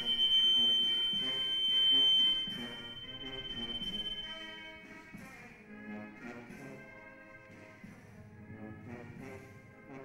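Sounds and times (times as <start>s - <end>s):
high-pitched whine: 0.0s - 4.8s.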